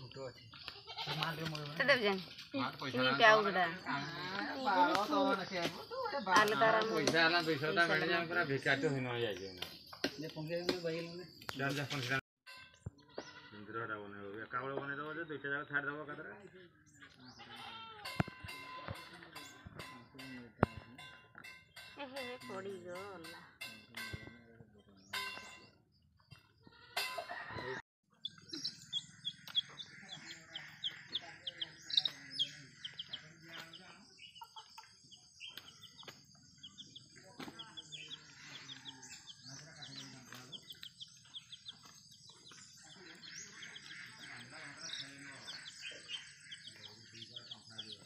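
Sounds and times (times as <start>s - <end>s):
hens clucking: 27.3s - 48.0s
chicks peeping: 28.1s - 48.0s.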